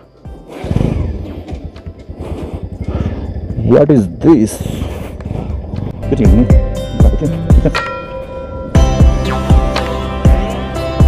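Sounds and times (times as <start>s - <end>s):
music playing: 5.8s - 11.0s.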